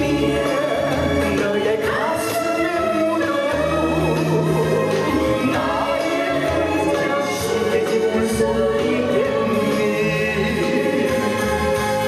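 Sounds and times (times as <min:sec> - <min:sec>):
recorded backing track: 0:00.0 - 0:12.0
man singing into a microphone: 0:06.9 - 0:11.4.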